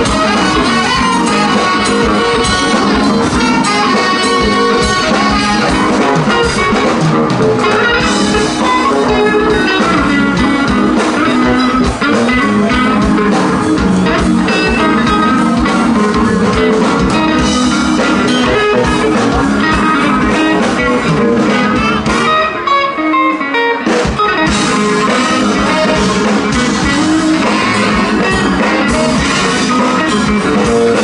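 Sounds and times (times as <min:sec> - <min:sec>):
blues band over pa: 0:00.0 - 0:31.0
electric guitar: 0:00.0 - 0:31.0.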